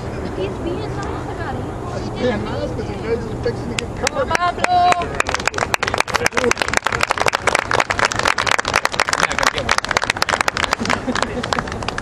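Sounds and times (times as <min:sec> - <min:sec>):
spectators clapping: 0:04.0 - 0:12.0.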